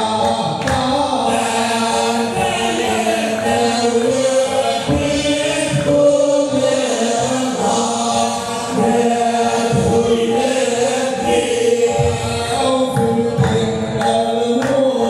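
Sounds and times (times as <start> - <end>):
group chanting in unison: 0.0 - 15.0.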